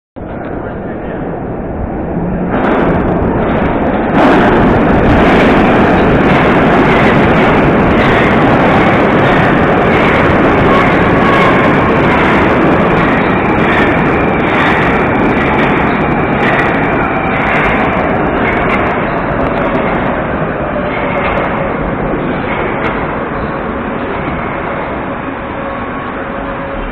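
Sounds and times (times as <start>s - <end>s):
metro train running noise: 0.2s - 26.9s.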